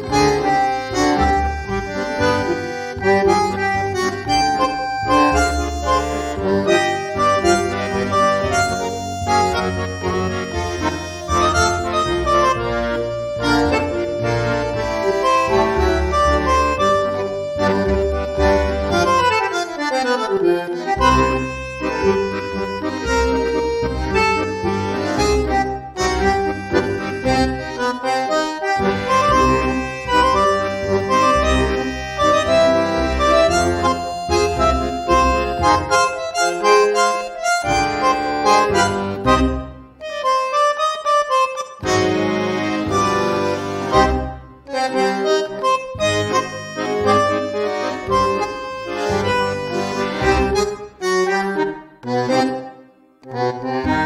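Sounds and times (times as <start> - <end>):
low bass notes: 0.0 - 40.3, 41.8 - 52.5, 53.2 - 54.0
tango music with bandoneon: 0.0 - 54.0.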